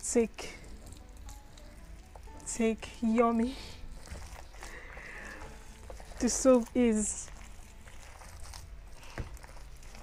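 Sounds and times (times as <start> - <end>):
wet squishing of soap paste: 0.2 - 10.0.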